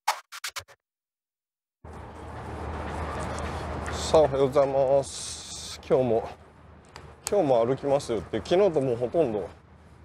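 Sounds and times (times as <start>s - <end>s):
outdoor street background noise: 1.8s - 10.0s.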